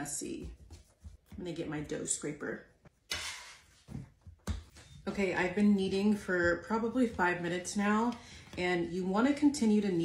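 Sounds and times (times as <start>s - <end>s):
hands kneading dough: 0.0s - 2.1s, 3.7s - 10.0s.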